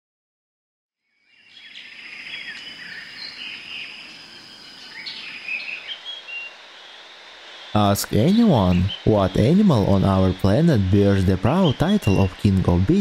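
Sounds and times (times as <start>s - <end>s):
high insect tone: 1.0s - 13.0s
birds chirping and singing: 1.3s - 13.0s
steady background hiss: 1.3s - 13.0s.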